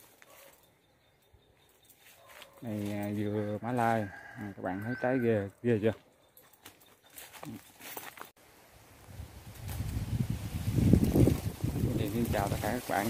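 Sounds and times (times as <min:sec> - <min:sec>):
wind buffeting microphone: 0:09.0 - 0:13.0.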